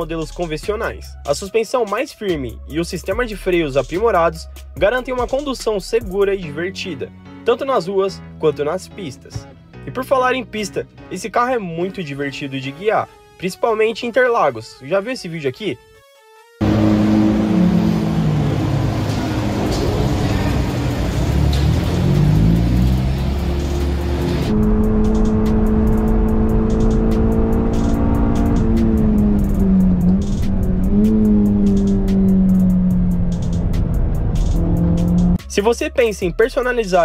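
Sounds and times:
car engine at high revs: 16.6s - 35.4s.

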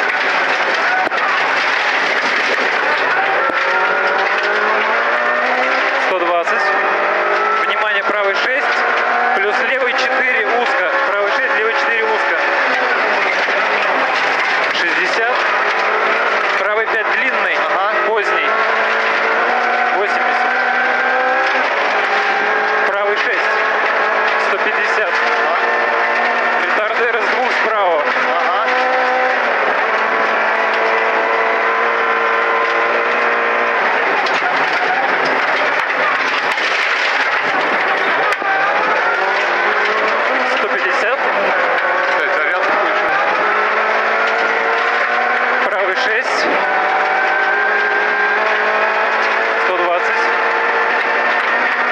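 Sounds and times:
gravel and tyre noise: 0.0s - 51.9s
rally car engine revving: 0.0s - 51.9s.

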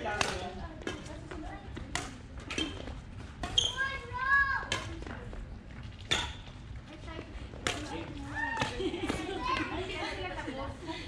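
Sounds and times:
people talking and calling out: 0.0s - 11.0s
racket hitting shuttlecock: 0.1s - 1.3s, 1.9s - 3.8s, 4.6s - 5.1s, 6.0s - 6.5s, 7.6s - 9.7s.

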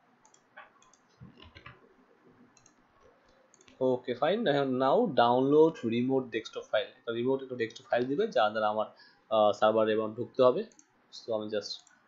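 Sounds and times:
computer mouse clicks: 0.2s - 1.8s, 2.5s - 3.8s, 10.7s - 11.0s.

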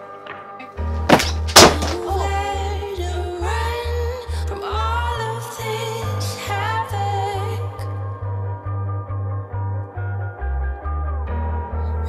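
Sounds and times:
soft soundtrack music: 0.0s - 12.0s
loud thuds: 0.3s - 2.3s.

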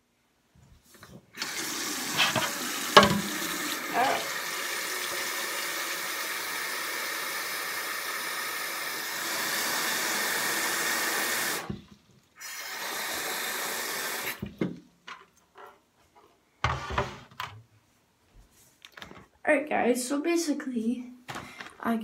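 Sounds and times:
faucet water running into bowl: 1.4s - 11.8s.

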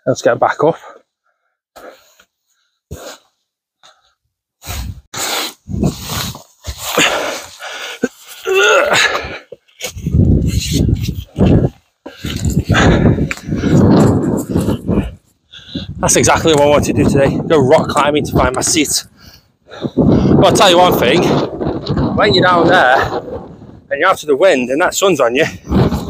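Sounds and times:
wind buffeting microphone: 4.9s - 6.4s, 9.9s - 26.0s
man breathing hard and grunting: 6.8s - 9.5s, 12.0s - 16.0s.

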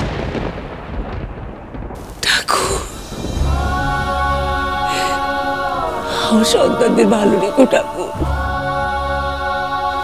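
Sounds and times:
deep boom and rumble: 0.0s - 4.9s.

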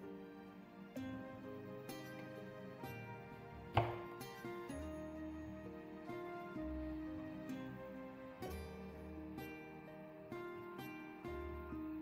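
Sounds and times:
gentle background music: 0.0s - 12.0s
knife chopping on wooden board: 3.8s - 4.1s.

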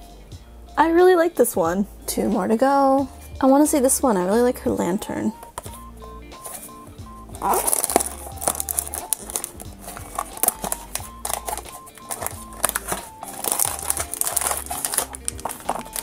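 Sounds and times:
background music: 0.0s - 16.0s
cardboard tearing: 7.4s - 16.0s
foil bag crinkling: 7.4s - 16.0s.

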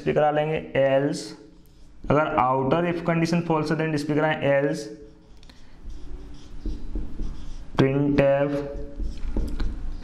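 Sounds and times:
marker writing on whiteboard: 0.0s - 10.0s.

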